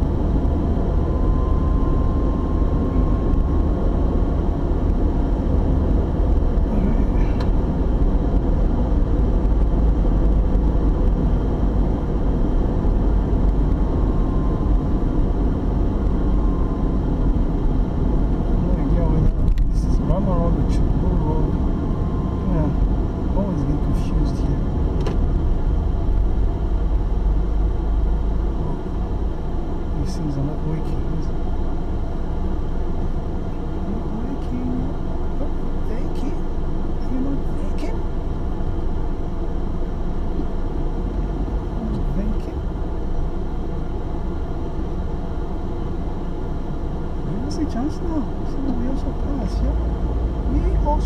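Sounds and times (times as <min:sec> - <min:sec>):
car engine and tyre rumble: 0:00.0 - 0:51.0.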